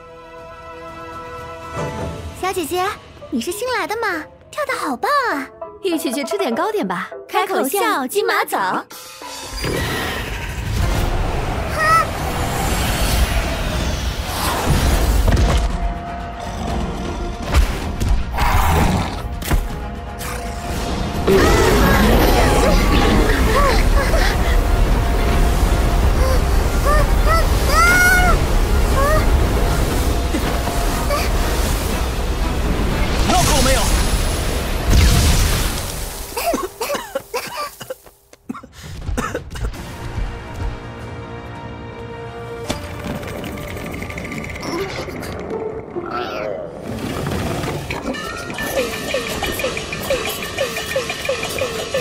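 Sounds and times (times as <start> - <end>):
cartoon voices coughing: 36.4 - 39.8.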